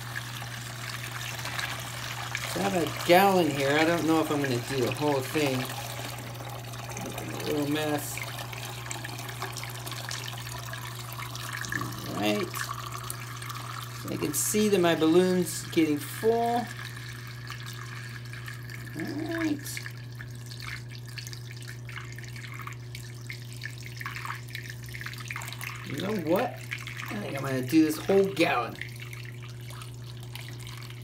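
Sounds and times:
water pouring through funnel: 0.0s - 31.0s.

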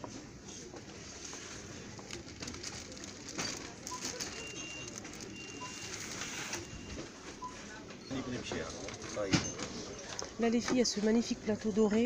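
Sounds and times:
shop background noise: 0.0s - 12.0s
packaging clicks and scrapes: 1.3s - 6.8s.

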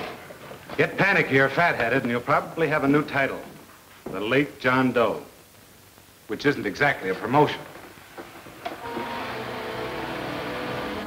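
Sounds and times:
projector motor whirring: 8.2s - 11.0s.

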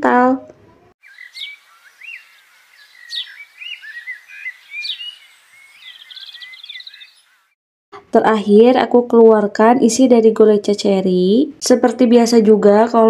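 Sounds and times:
small bird chirping and whistling: 1.0s - 7.6s.

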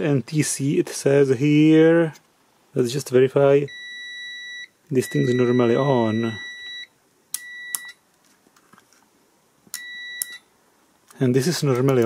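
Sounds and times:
multimeter beeps: 3.7s - 8.0s, 9.7s - 10.5s.

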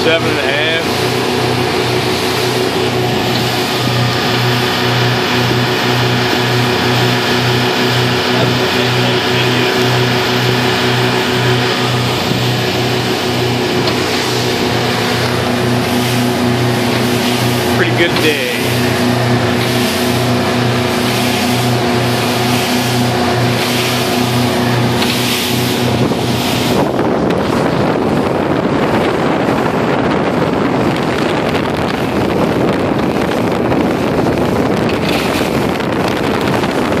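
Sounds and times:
motorboat engine drone: 0.0s - 37.0s
wind and water rushing past hull: 0.0s - 37.0s.

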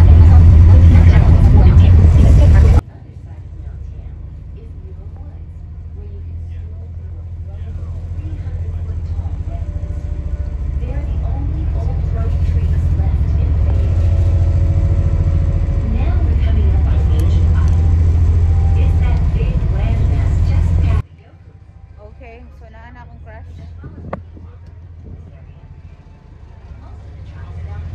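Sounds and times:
boat engines rumbling: 0.0s - 27.9s.

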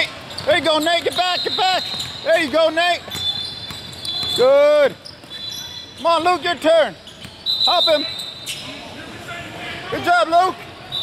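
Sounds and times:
referee's whistle: 0.3s - 2.4s, 3.1s - 6.1s, 7.0s - 8.7s.

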